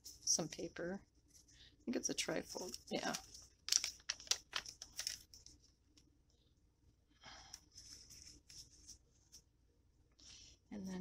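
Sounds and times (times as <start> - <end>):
paper pages rustling: 2.4 - 5.8, 7.6 - 9.5.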